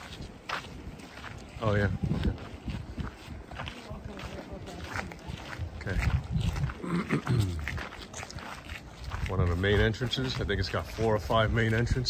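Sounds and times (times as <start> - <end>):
footsteps on stone pavement: 0.0 - 12.0
outdoor background noise: 0.0 - 12.0
man speaking: 1.5 - 2.5, 9.2 - 12.0.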